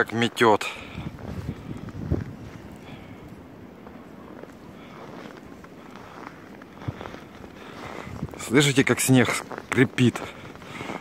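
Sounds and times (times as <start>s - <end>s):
footsteps crunching in snow: 0.0s - 11.0s.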